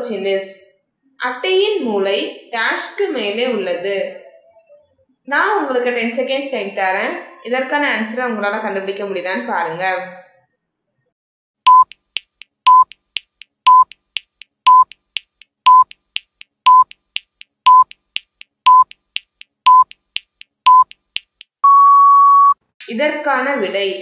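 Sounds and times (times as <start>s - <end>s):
short timer beeps: 11.7s - 16.0s, 16.7s - 22.6s
soft ticks: 11.7s - 21.5s
longer higher beep: 12.7s - 13.0s, 13.7s - 14.0s, 14.7s - 14.9s, 16.7s - 16.9s, 17.7s - 18.0s, 19.7s - 20.0s, 21.6s - 22.6s.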